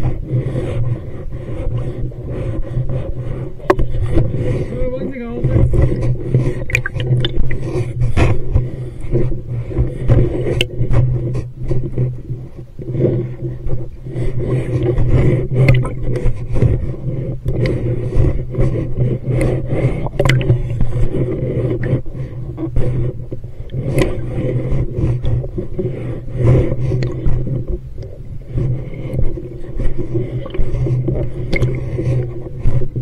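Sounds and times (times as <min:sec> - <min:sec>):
clicks and scrapes: 0:00.0 - 0:33.0
diver breathing through regulator: 0:00.0 - 0:33.0
exhaled bubbles rumbling: 0:00.0 - 0:33.0.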